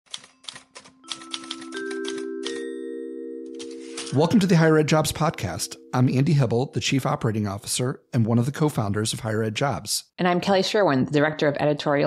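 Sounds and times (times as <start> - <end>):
typewriter-style key clicks: 0.1 - 2.6
held notes building a chord: 1.3 - 7.4.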